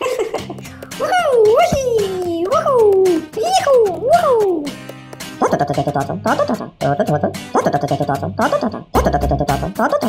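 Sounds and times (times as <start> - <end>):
light background music: 0.0 - 10.0
cartoon gibberish voice: 1.0 - 4.8, 5.4 - 10.0.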